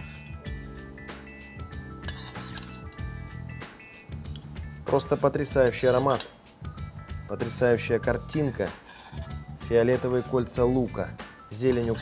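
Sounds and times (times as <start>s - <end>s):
background music: 0.0s - 12.0s
metal spoon clinking ceramic bowl: 2.0s - 3.1s, 4.2s - 4.6s, 5.6s - 6.4s, 8.3s - 9.2s, 11.6s - 12.0s.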